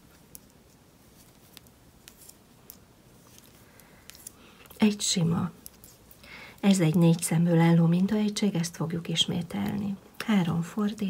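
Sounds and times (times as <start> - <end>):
knitting needles clicking: 5.5 - 6.2.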